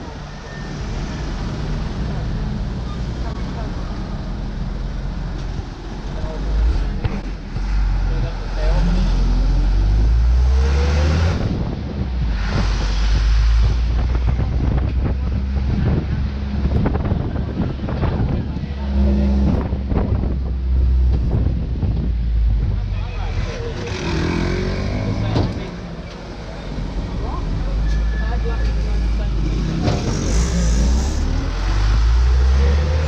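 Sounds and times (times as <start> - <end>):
vehicle engine accelerating: 0.8 - 33.0
wind buffeting microphone: 11.3 - 23.0.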